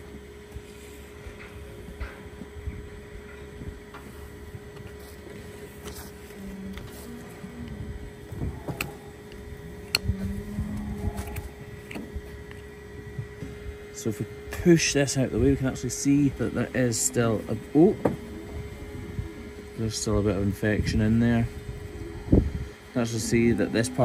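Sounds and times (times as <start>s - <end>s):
mechanical hum: 0.0s - 24.0s.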